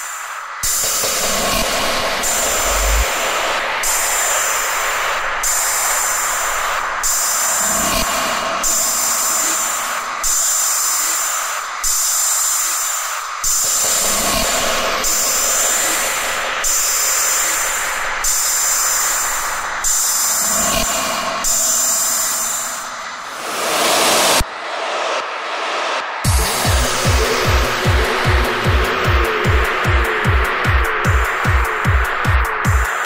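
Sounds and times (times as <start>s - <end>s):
noise swell: 0.0s - 10.2s
noisy electronic synth music: 0.6s - 33.0s.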